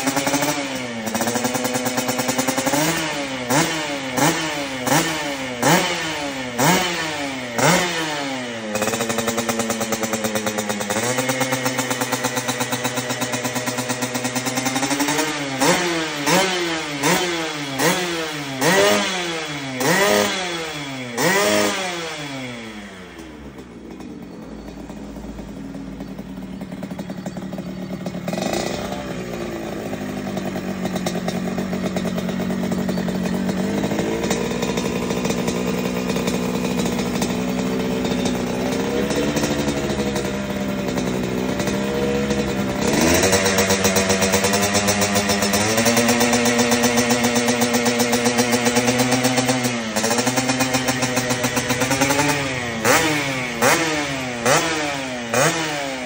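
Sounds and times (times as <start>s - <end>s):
two-stroke motorcycle engine revving: 0.0s - 56.0s.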